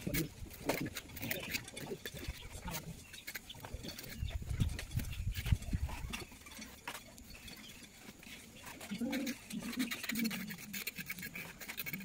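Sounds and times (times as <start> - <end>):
trowel scraping wet cement: 0.0 - 12.0.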